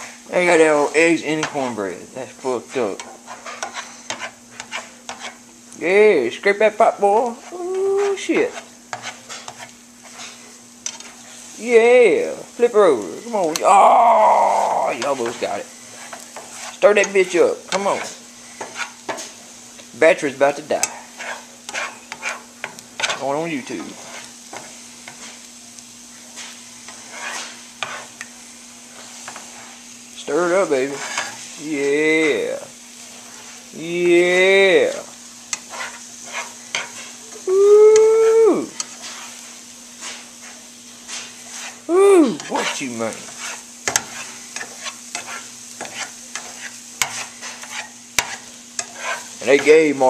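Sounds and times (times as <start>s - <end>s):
spatula scraping pan: 0.0s - 5.5s, 6.3s - 13.6s, 14.2s - 37.4s, 38.0s - 50.0s
eggs sizzling in frying pan: 0.0s - 50.0s.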